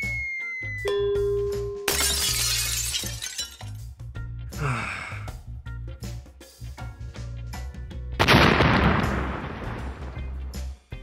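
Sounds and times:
background music: 0:00.0 - 0:11.0
loud shattering crash: 0:01.9 - 0:03.7.

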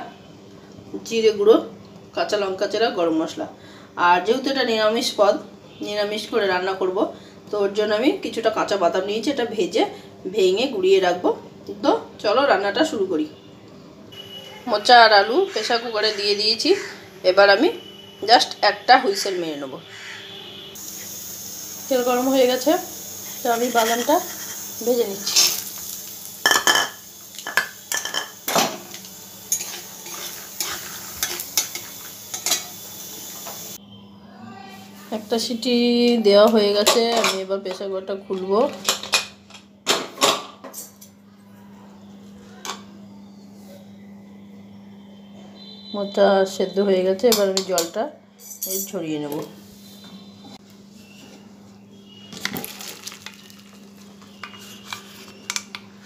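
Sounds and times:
peanuts sizzling in oil: 0:19.9 - 0:33.8, 0:51.9 - 0:55.8
food pattering: 0:52.4 - 0:55.8.

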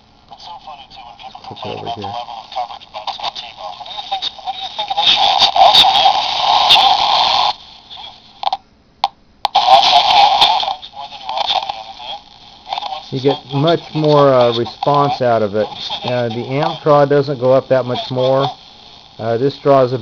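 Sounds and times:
tinny radio broadcast: 0:00.0 - 0:08.6, 0:09.4 - 0:20.0
radio crackles: 0:00.0 - 0:20.0.

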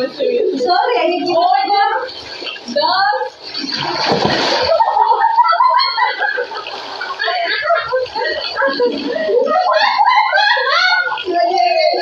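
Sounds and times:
pool water splashing: 0:00.0 - 0:12.0
excited voices: 0:04.6 - 0:12.0.

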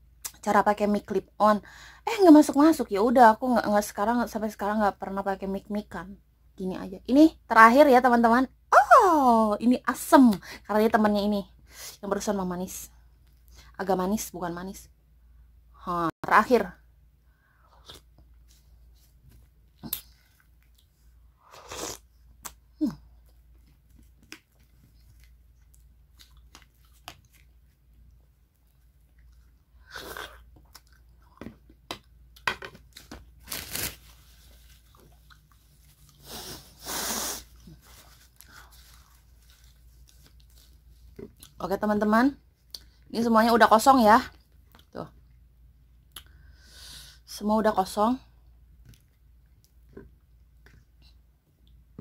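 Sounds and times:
seeds crunching while chewed: 0:23.2 - 0:31.5.

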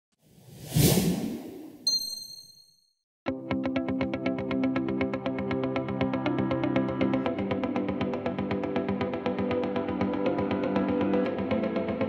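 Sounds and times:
whoosh: 0:00.3 - 0:01.8
bright ding: 0:01.8 - 0:02.9.

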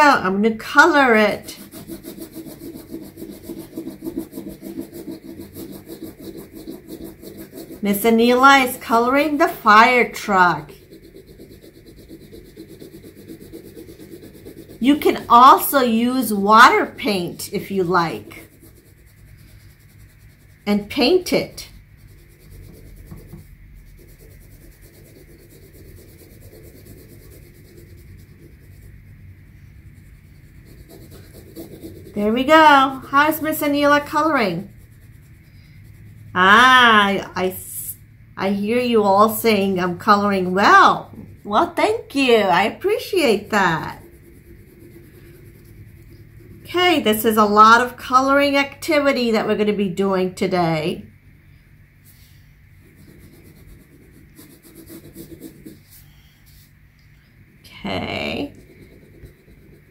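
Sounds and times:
crayon scribbling on paper: 0:00.0 - 0:50.1, 0:52.2 - 0:56.6, 0:58.2 - 0:59.9.

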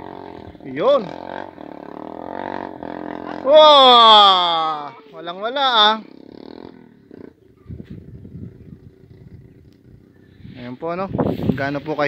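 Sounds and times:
wind buffeting microphone: 0:07.4 - 0:12.0.

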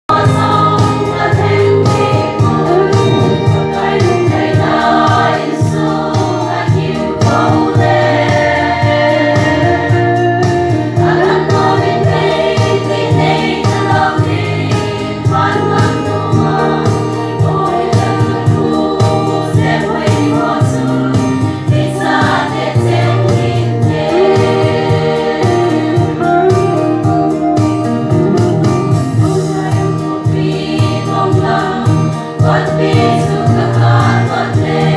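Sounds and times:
women's choir singing a hymn: 0:00.1 - 0:26.3, 0:29.1 - 0:34.9
steady beat: 0:00.4 - 0:09.0, 0:22.0 - 0:29.8.

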